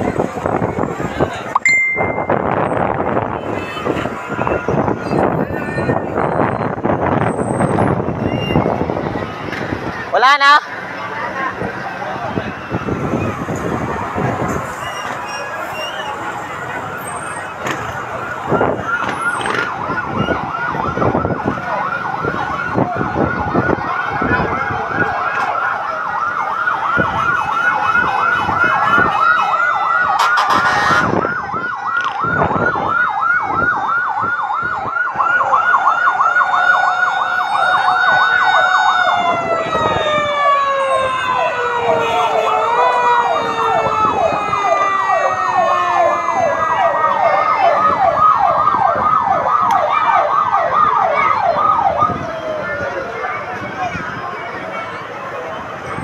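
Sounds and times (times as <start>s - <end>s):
siren wailing: 0.0s - 10.7s, 11.6s - 56.0s
fire truck sirens yelping: 0.0s - 56.0s.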